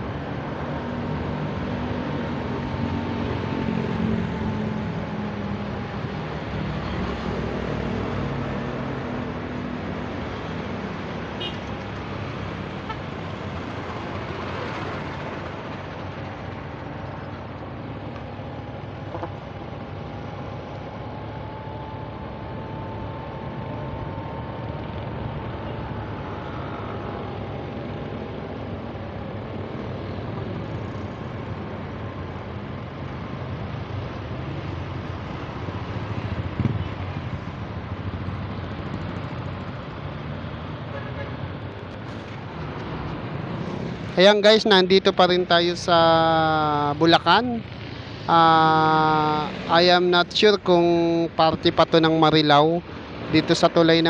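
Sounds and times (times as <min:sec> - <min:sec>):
road traffic noise: 0:00.0 - 0:54.0.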